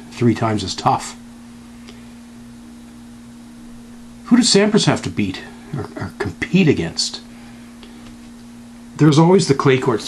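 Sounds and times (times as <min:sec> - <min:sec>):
low electrical hum: 0:00.0 - 0:10.0
room background noise: 0:00.0 - 0:10.0.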